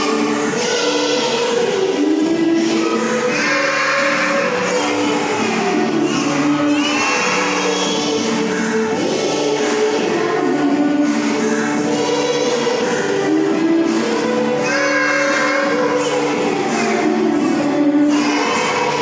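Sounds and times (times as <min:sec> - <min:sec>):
group singing slow song: 0:00.0 - 0:19.0.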